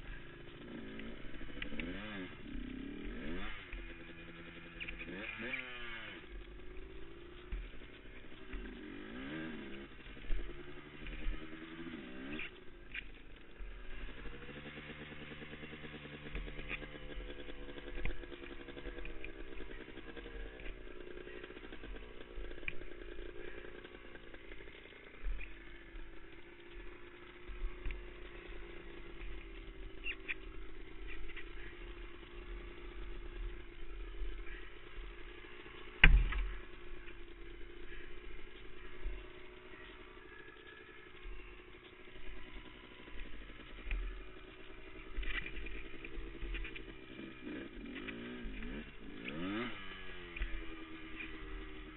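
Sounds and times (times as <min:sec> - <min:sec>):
quad engine idling: 0:00.0 - 0:51.9
low thumps and clatter: 0:34.9 - 0:37.6.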